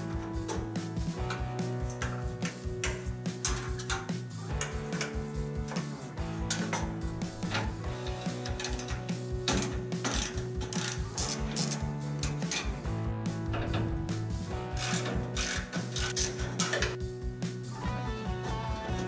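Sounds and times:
music with steady beat: 0:00.0 - 0:19.0
ratchet clicking: 0:00.3 - 0:12.8, 0:13.5 - 0:17.0.

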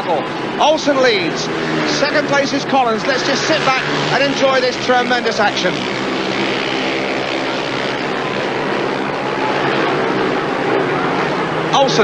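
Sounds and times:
motorcycle engines racing: 0:00.0 - 0:12.0.

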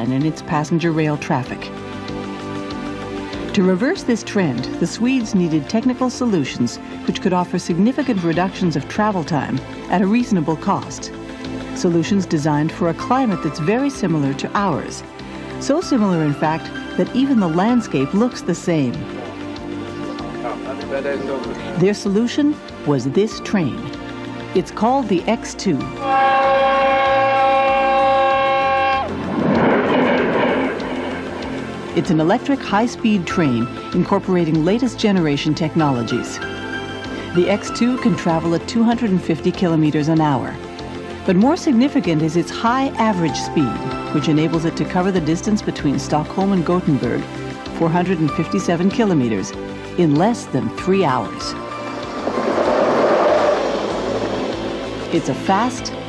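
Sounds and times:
train horn chord: 0:25.9 - 0:32.6
train rushing past: 0:25.9 - 0:34.2, 0:50.7 - 0:56.0.

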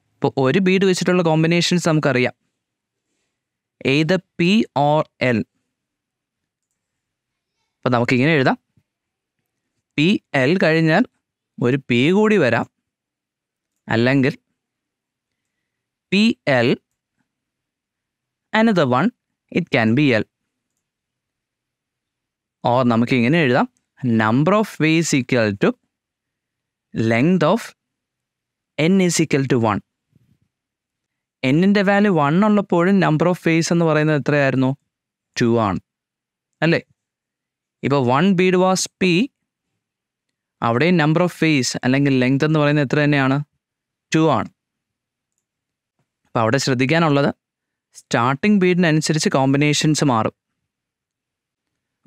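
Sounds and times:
man speaking: 0:00.2 - 0:02.3, 0:03.8 - 0:05.4, 0:07.9 - 0:08.6, 0:10.0 - 0:12.7, 0:13.9 - 0:14.4, 0:16.1 - 0:16.8, 0:18.6 - 0:20.3, 0:22.6 - 0:25.8, 0:27.0 - 0:27.8, 0:28.8 - 0:29.8, 0:31.4 - 0:34.8, 0:35.4 - 0:35.8, 0:36.6 - 0:36.8, 0:37.8 - 0:39.3, 0:40.6 - 0:43.5, 0:44.1 - 0:44.5, 0:46.4 - 0:47.4, 0:48.0 - 0:50.3.

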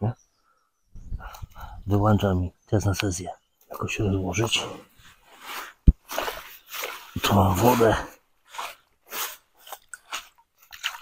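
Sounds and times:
water splashing onto ground: 0:08.6 - 0:11.0.

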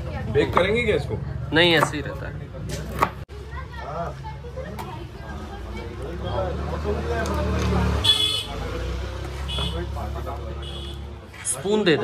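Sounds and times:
vehicle horn toots: 0:08.0 - 0:08.6, 0:09.5 - 0:09.9, 0:10.6 - 0:11.1.

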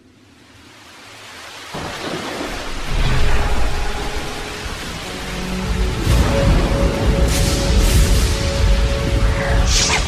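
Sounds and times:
rain hissing: 0:00.1 - 0:10.0.

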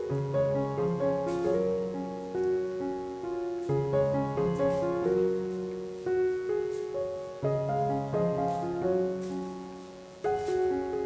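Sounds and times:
soft piano chords: 0:00.0 - 0:11.0.

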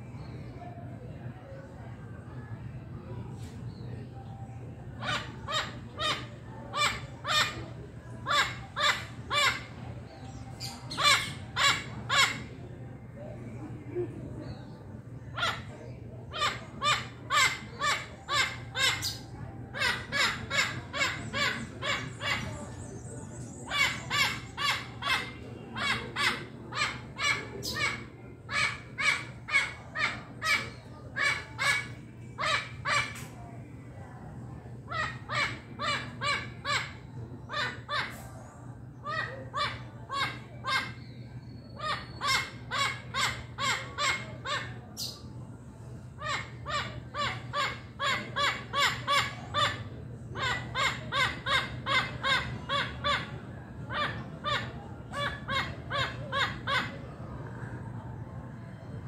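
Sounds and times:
parrot squawking: 0:10.6 - 0:12.5, 0:23.7 - 0:33.2, 0:34.9 - 0:38.1, 0:46.2 - 0:49.8, 0:50.4 - 0:53.3, 0:53.9 - 0:56.9.

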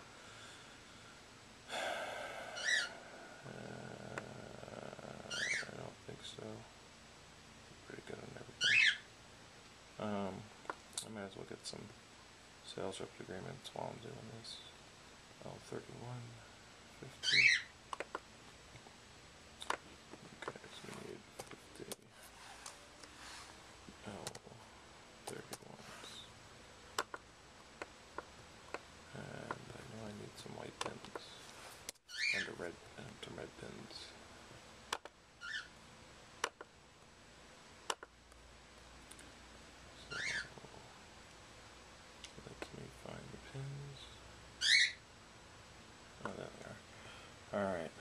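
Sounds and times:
short low vocal sound: 0:01.7 - 0:05.9
bird call rising in pitch: 0:02.6 - 0:03.0
keyboard and mouse clicks: 0:17.9 - 0:18.2, 0:27.0 - 0:27.2, 0:36.4 - 0:36.7, 0:37.9 - 0:38.1.

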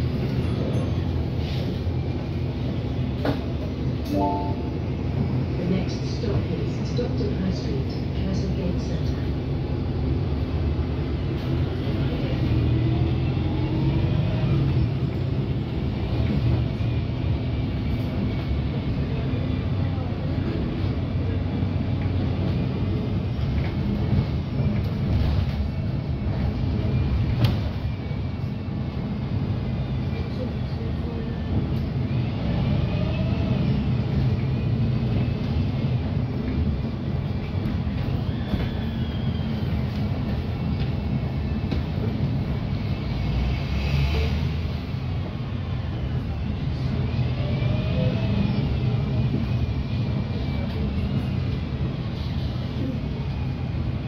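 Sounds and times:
bus engine rumble: 0:00.0 - 0:54.0
road noise: 0:00.0 - 0:54.0.

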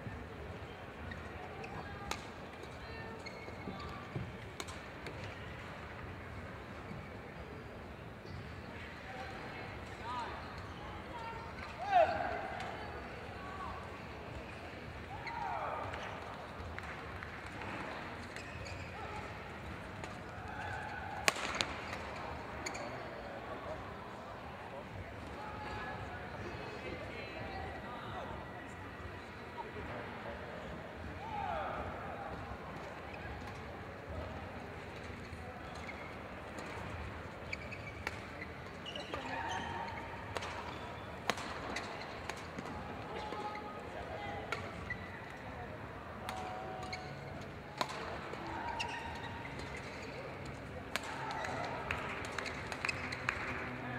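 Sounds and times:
court shoes squeaking: 0:00.0 - 0:23.8, 0:32.8 - 0:53.9
background chatter: 0:00.0 - 0:53.9
murmur of voices: 0:00.0 - 0:53.9
shoe squeaks on court: 0:03.1 - 0:04.2, 0:18.2 - 0:19.3, 0:22.6 - 0:23.2, 0:37.4 - 0:40.1
rackets hitting shuttlecock: 0:20.0 - 0:22.8, 0:40.3 - 0:43.3, 0:47.7 - 0:48.9, 0:49.6 - 0:53.7
racket striking shuttlecock: 0:21.2 - 0:21.8, 0:47.8 - 0:48.1.

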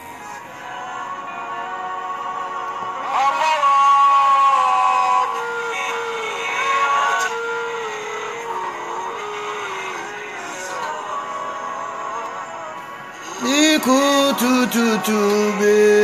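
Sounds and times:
music: 0:00.0 - 0:16.0
person singing long gliding notes: 0:00.0 - 0:16.0.

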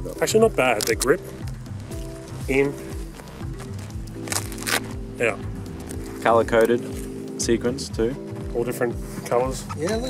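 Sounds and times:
background music held notes: 0:00.0 - 0:10.0
head cover rustling clicks: 0:03.2 - 0:05.0.

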